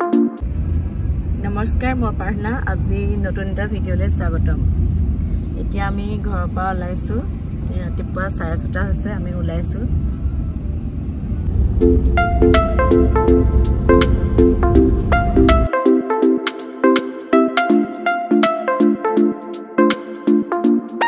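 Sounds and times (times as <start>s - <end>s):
woman talking: 1.4s - 4.7s, 5.6s - 10.0s.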